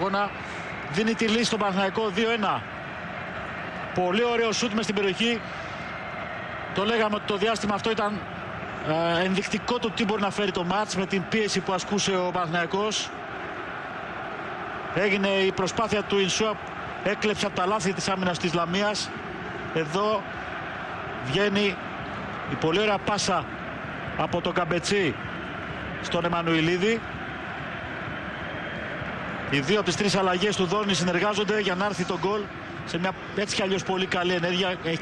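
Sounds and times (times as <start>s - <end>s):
stadium crowd noise: 0.0s - 35.0s.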